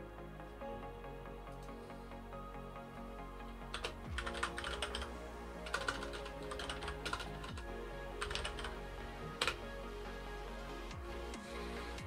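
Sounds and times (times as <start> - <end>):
background music: 0.0 - 12.0
computer keyboard typing: 3.7 - 8.7, 9.4 - 9.6.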